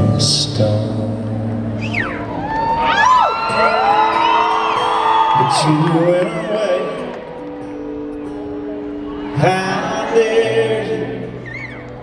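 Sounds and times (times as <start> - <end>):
man singing: 0.0 - 1.6, 5.4 - 7.1, 9.3 - 11.7
acoustic guitar: 0.0 - 12.0.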